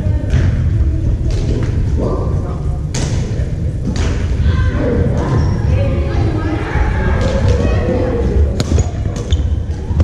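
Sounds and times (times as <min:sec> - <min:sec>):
indistinct echoing voices: 0:00.0 - 0:10.0
shuttlecocks struck by rackets: 0:02.9 - 0:04.4.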